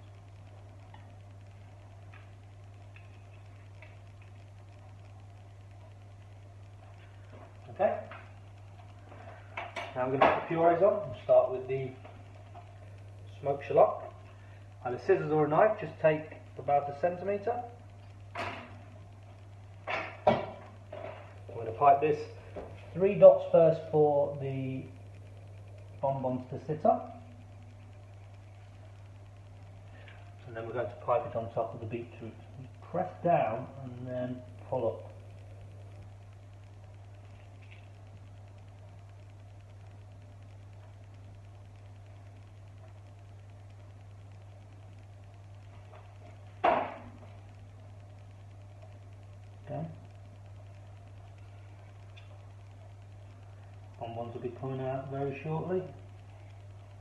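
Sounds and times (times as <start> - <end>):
low steady hum: 0.0 - 57.0.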